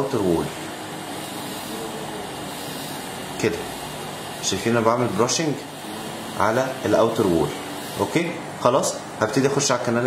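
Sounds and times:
dental motor running: 0.0 - 9.1.

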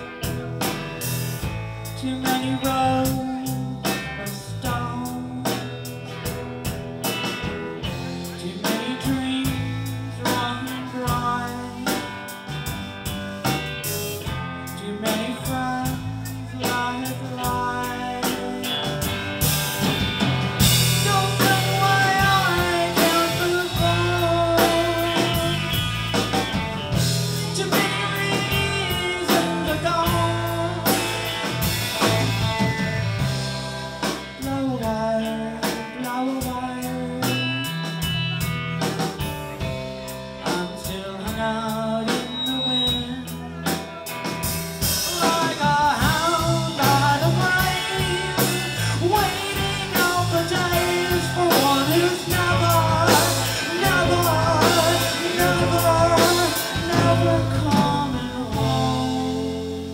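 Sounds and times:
drums: 0.0 - 59.9
electric guitar: 0.0 - 59.9.

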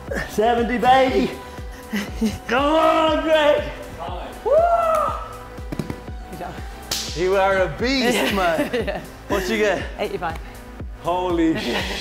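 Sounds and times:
background music: 0.0 - 12.0
person shouting woo cheer: 4.4 - 5.3.

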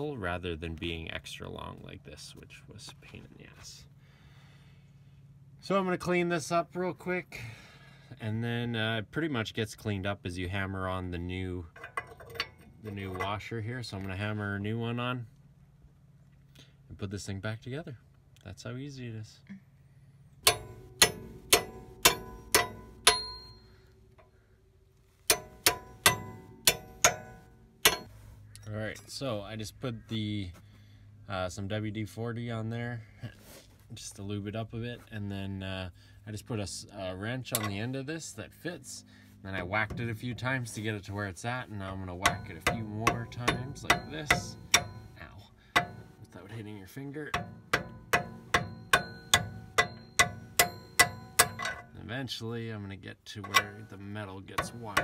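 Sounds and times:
hammer striking metal: 20.4 - 23.8, 25.3 - 28.2, 42.2 - 45.2, 45.8 - 46.3, 47.3 - 51.9, 53.4 - 55.0.

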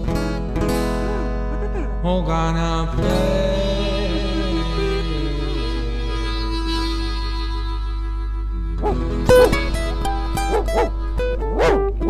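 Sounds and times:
blues backing music: 3.2 - 12.0
dog barking and yelping: 10.4 - 11.9.

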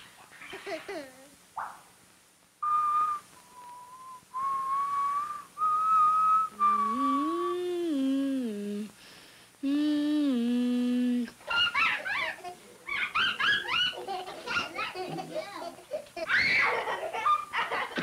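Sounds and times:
whistled tune: 2.6 - 7.2
low buzzy tone: 2.8 - 8.9, 9.6 - 11.3.

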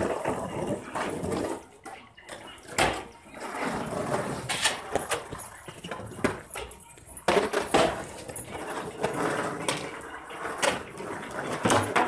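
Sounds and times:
skateboard wheels rolling on asphalt: 0.0 - 6.6, 7.2 - 12.0.

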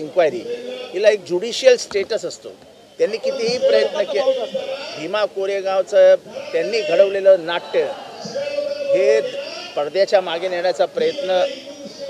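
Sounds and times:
man speaking into microphones: 0.0 - 12.0.

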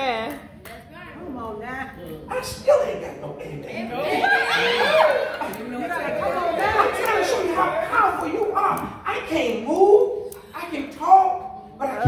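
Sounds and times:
voices talking over one another: 2.3 - 10.2.

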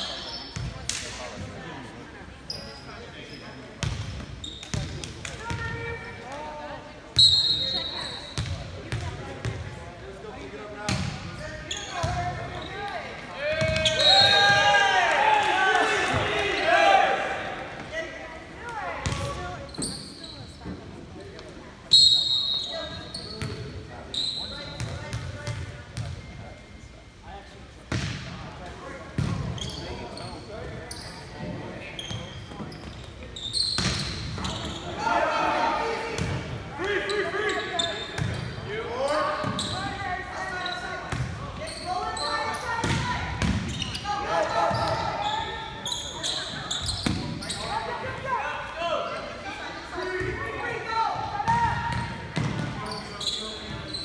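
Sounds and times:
volleyball smacks echoing in gym: 0.5 - 1.5, 42.8 - 43.8.

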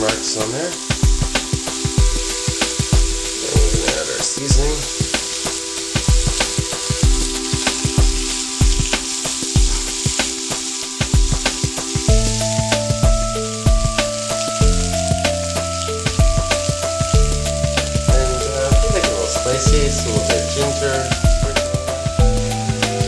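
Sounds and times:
background music with steady beat: 0.0 - 23.0
broth simmering: 0.0 - 23.0
meat sizzling on a grill: 0.0 - 23.0.

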